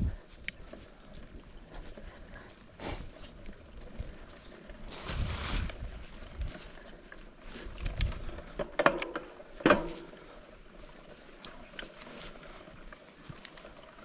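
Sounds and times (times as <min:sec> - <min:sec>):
bike tyres rolling over dirt: 0:00.0 - 0:14.0
bike frame and chain rattling: 0:03.1 - 0:14.0
brush swishing against camera: 0:04.9 - 0:05.8.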